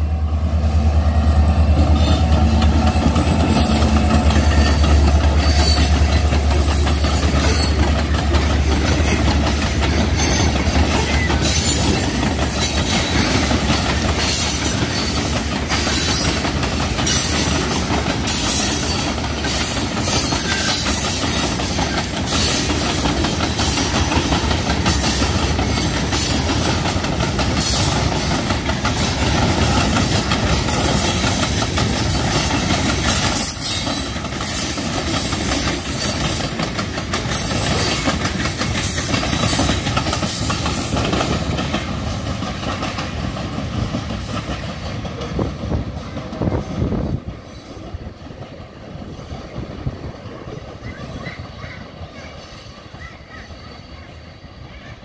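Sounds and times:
train wheels rumbling on rail: 0.0s - 55.0s
wheels clacking over rail joints: 1.6s - 53.4s.

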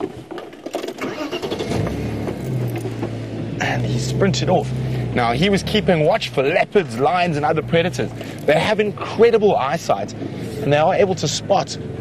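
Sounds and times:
vehicle engine starting and idling: 0.2s - 12.0s.

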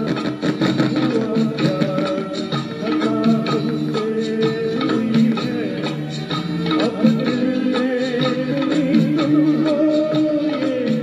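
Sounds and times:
man singing into a microphone: 0.0s - 11.0s
recorded backing track: 0.0s - 11.0s.

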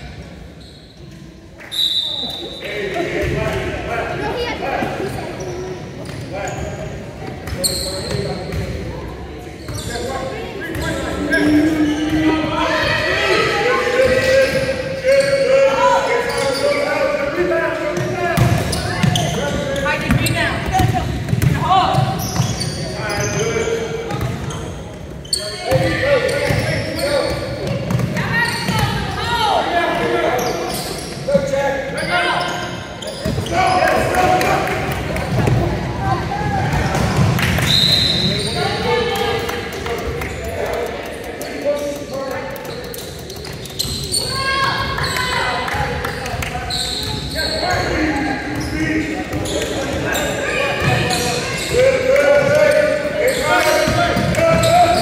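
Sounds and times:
people shouting and talking: 0.0s - 55.0s.

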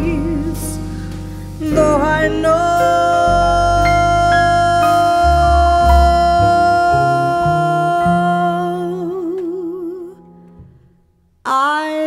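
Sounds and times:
woman singing with vibrato: 0.0s - 1.0s, 1.6s - 10.2s, 11.5s - 12.0s
bass notes: 0.0s - 10.8s.

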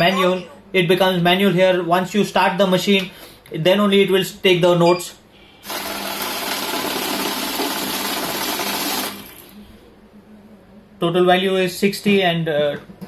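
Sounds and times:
currency counting machine whirring: 5.6s - 9.5s.

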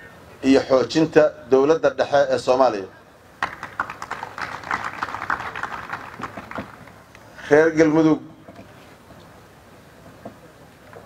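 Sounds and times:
audience applauding: 3.4s - 7.0s.

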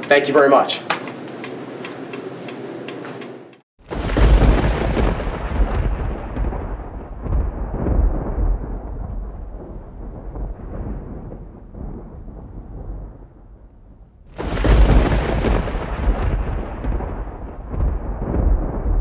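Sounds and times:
deep boom rolling like thunder: 3.8s - 19.0s.

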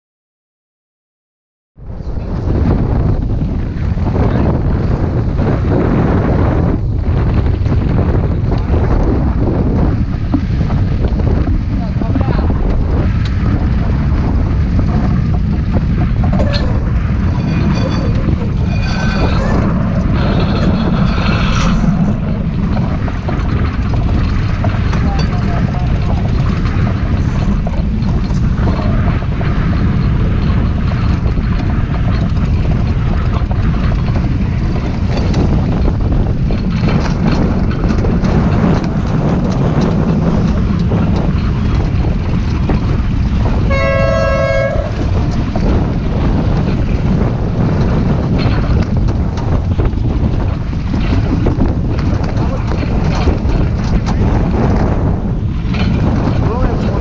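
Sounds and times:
wind rushing over microphone: 1.8s - 57.0s
water rushing along hull: 1.9s - 57.0s
horn sounding: 43.7s - 45.1s.

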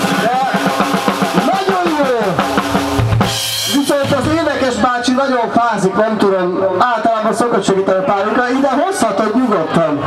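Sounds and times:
man talking: 1.4s - 2.4s, 3.6s - 10.0s.

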